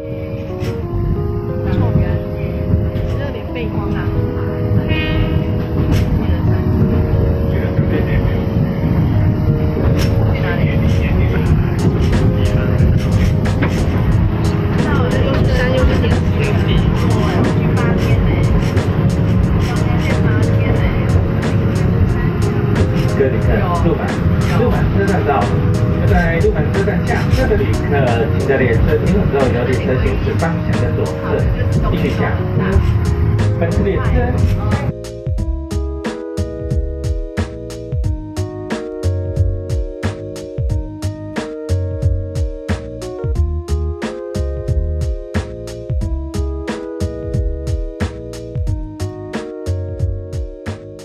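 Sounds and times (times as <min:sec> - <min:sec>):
background music with held chords: 0:00.0 - 0:51.0
train rumbling: 0:00.0 - 0:51.0.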